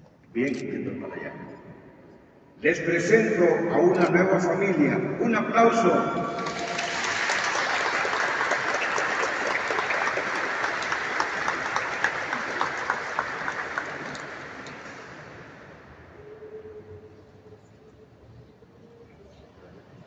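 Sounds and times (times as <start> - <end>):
congregation applauding: 6.2 - 16.5.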